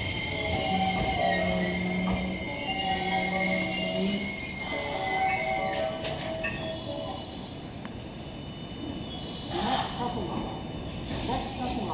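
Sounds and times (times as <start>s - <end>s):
train rumbling to a stop: 0.0s - 11.9s.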